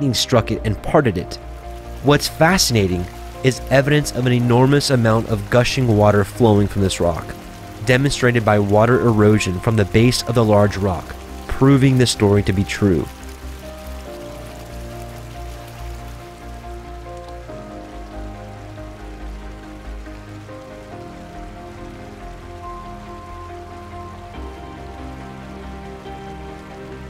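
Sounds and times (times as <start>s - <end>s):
ambient chords over low bass: 0.0s - 27.0s.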